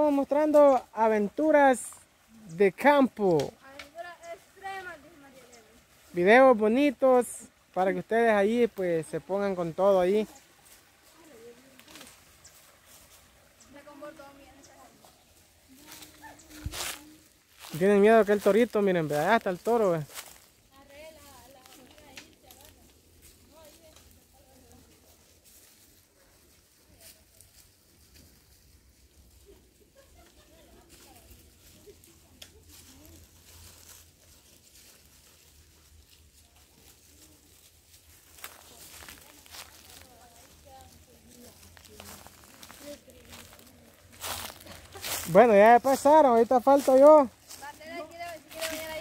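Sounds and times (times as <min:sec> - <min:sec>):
dry twigs crackling: 0:00.0 - 0:49.0.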